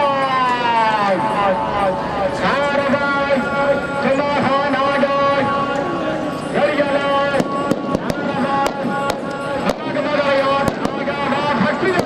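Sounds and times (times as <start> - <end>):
firecrackers banging: 6.4 - 12.0.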